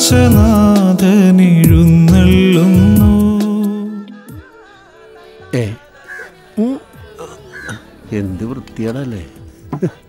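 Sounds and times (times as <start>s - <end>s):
soft background music: 0.0s - 10.0s
crows cawing: 6.0s - 6.4s, 7.3s - 7.9s.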